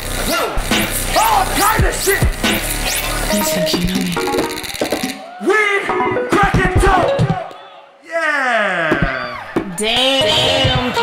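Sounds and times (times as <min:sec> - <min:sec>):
hip-hop backing beat: 0:00.0 - 0:05.3, 0:05.9 - 0:07.5
rapping over a beat: 0:00.3 - 0:04.1, 0:09.9 - 0:11.0.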